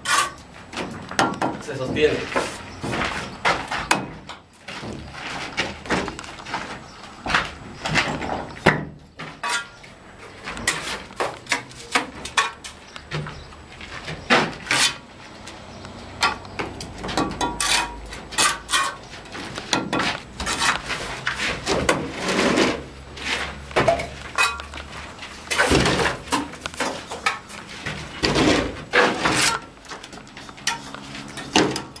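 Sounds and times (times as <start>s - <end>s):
trowel clinking and scraping on bricks: 0.0s - 5.6s, 9.3s - 13.0s, 17.1s - 32.0s.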